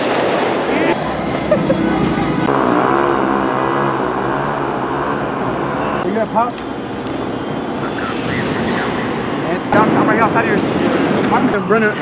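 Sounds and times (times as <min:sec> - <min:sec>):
crowd noise: 0:00.0 - 0:12.0
traffic rushing: 0:00.0 - 0:12.0
faint voices: 0:00.6 - 0:03.8, 0:07.2 - 0:12.0.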